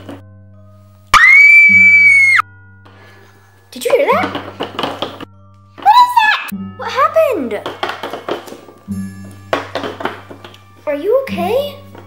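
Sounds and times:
girl screaming: 1.2s - 2.4s, 5.8s - 6.5s.

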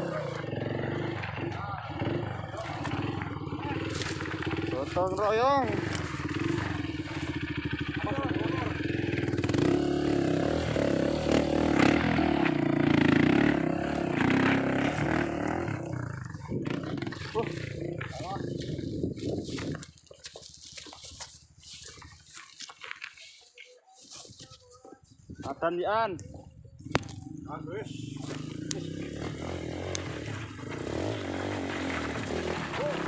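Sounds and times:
motorbike engine revving: 0.0s - 22.2s, 26.8s - 33.0s.

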